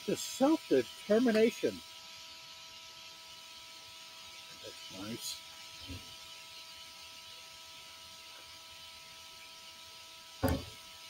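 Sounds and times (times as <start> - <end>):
faint electrical tones: 0.0 - 11.0
steady hiss: 0.0 - 11.0.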